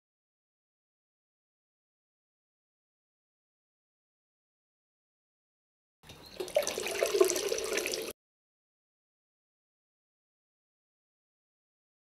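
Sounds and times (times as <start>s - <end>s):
tap water splashing in sink: 6.4s - 8.1s.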